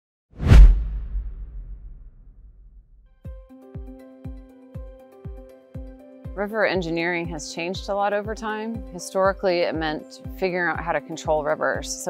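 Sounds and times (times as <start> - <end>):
low rumble: 0.4 - 3.0
whoosh with deep boom: 0.4 - 3.0.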